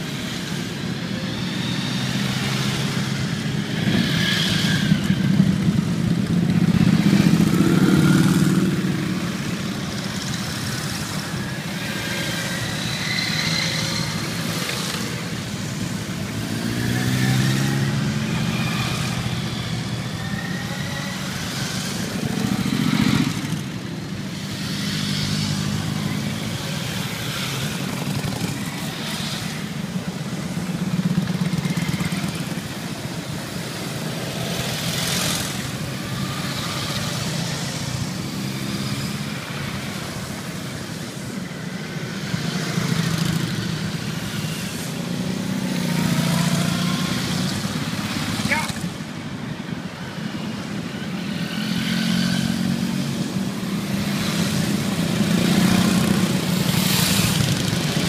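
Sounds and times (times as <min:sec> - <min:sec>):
motorcycle engines revving: 0:00.0 - 0:58.0
motorcycles riding past: 0:00.0 - 0:58.0.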